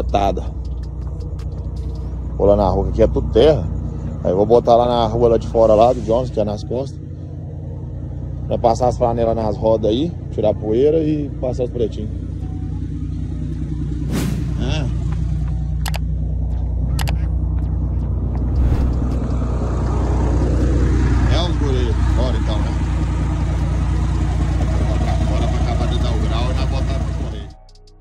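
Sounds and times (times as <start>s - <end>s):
diesel truck engine idling: 0.0s - 27.7s
sharp clicks: 15.8s - 17.3s.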